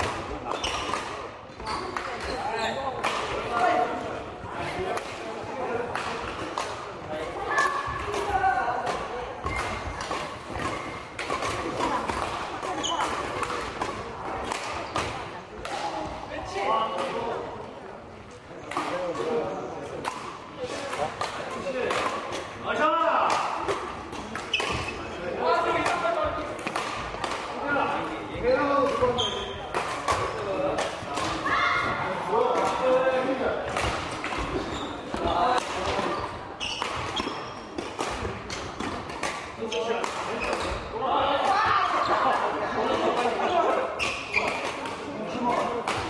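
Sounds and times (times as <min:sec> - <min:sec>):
rackets hitting shuttlecocks: 0:00.0 - 0:02.3, 0:04.8 - 0:06.9, 0:07.5 - 0:16.1, 0:20.0 - 0:46.0
people talking and calling out: 0:00.0 - 0:46.0.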